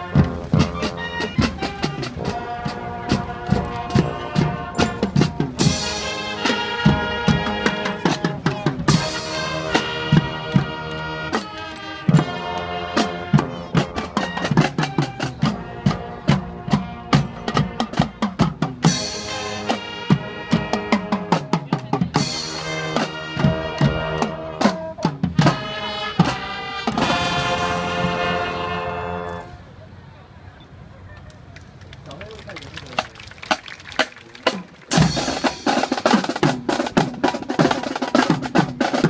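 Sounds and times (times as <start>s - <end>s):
marching drums: 0.0s - 29.0s, 32.6s - 39.0s
brass chords: 0.0s - 29.8s, 34.4s - 39.0s.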